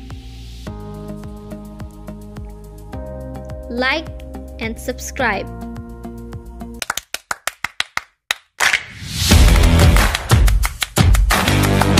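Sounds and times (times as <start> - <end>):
music: 0.0 - 7.0, 9.0 - 11.9.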